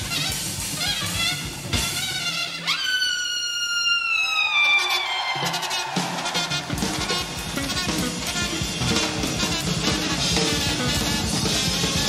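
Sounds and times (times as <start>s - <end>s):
trumpet sustained high note: 0.0s - 12.0s.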